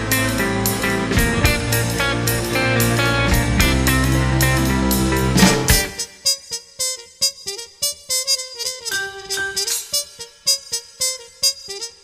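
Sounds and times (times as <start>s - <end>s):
sharp drum hits: 5.3s - 6.0s
piano-like keyboard line: 8.9s - 10.3s.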